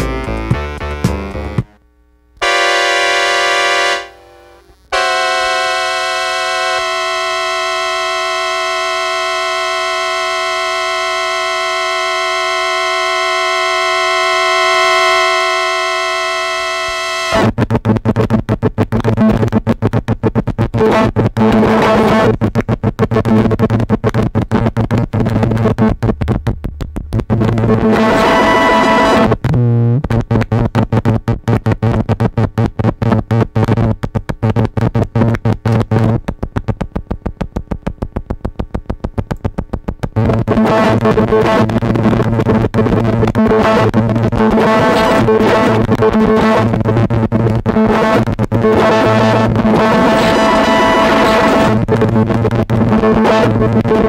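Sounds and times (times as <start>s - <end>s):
keyboard chord: 2.4s - 17.3s
stuttering noisy synth glitch: 2.4s - 36.9s, 40.1s - 54.0s.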